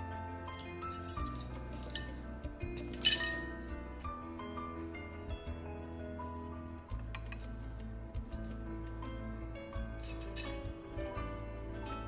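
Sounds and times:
background music: 0.0s - 12.0s
crockery tapping: 6.9s - 7.6s.

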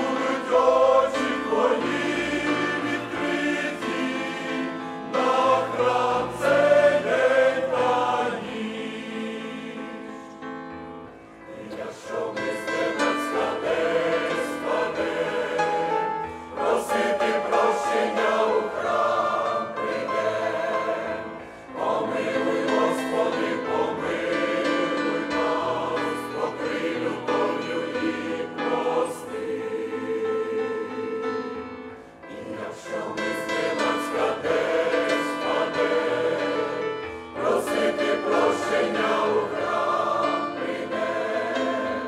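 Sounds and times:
choir singing a hymn: 0.0s - 42.0s.

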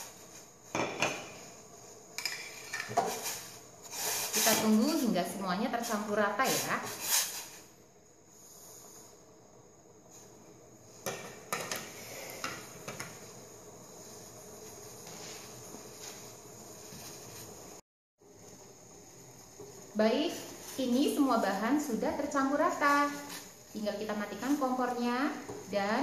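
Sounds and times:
pot simmering hiss: 0.0s - 26.0s.

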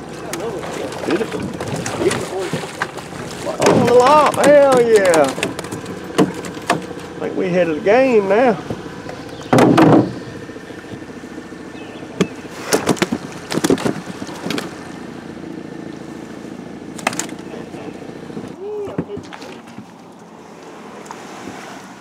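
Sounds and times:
small boat motor idling: 0.0s - 22.0s
knocks: 9.5s - 10.2s.

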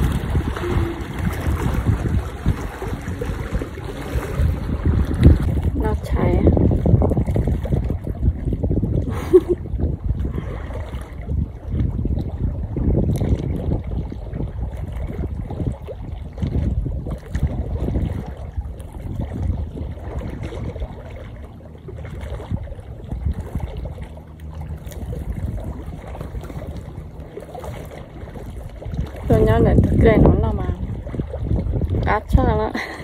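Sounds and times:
water lapping at shore: 0.0s - 33.0s
wind buffeting microphone: 0.0s - 33.0s.

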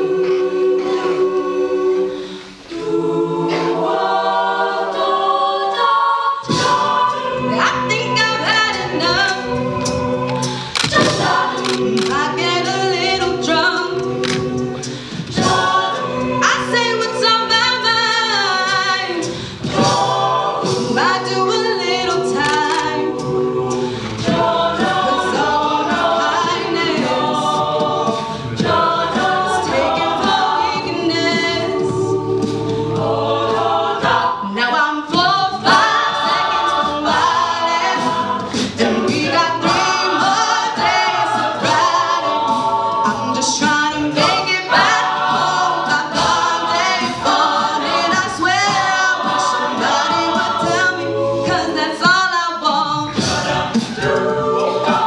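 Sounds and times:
backing voices singing: 0.0s - 55.0s
vocal percussion beat: 0.0s - 55.0s.

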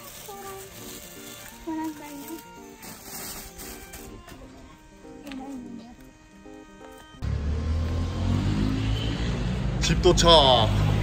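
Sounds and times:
faint background music: 0.0s - 8.7s
vehicle engine rumble: 7.0s - 11.0s.

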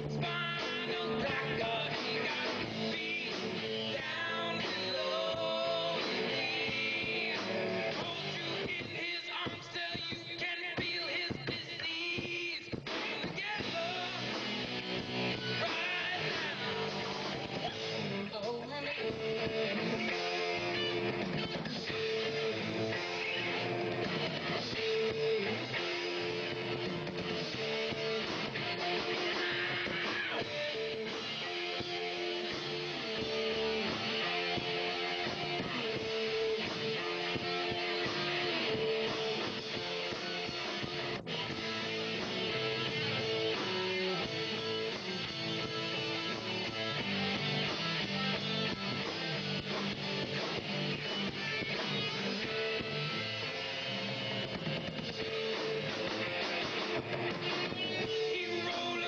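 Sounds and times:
rock band playing live: 0.0s - 59.0s.

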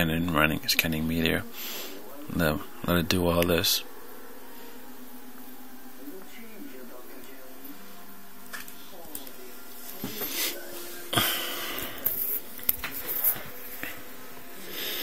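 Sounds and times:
faint background murmur: 0.0s - 15.0s.

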